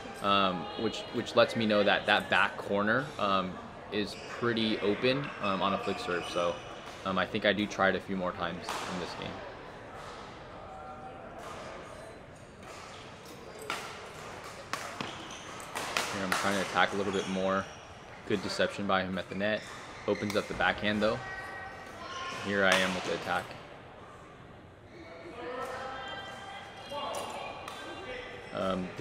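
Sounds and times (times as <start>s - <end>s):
murmur of voices: 0.0s - 29.0s
racket hitting shuttlecock: 12.6s - 16.8s.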